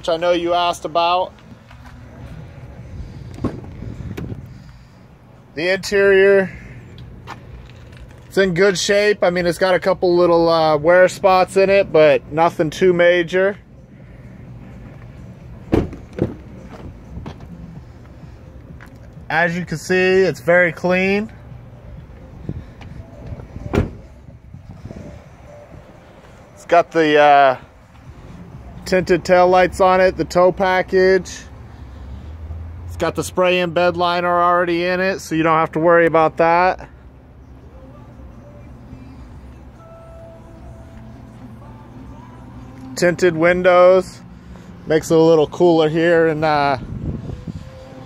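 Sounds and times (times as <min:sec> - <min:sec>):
outdoor background noise: 0:00.0 - 0:48.0
wind rumble on microphone: 0:02.7 - 0:04.6, 0:22.0 - 0:26.0, 0:46.8 - 0:48.0
microphone handling noise: 0:03.2 - 0:04.5
car door thump: 0:03.4 - 0:04.4, 0:15.7 - 0:17.5, 0:23.6 - 0:24.1
car door latch click: 0:23.7 - 0:24.0.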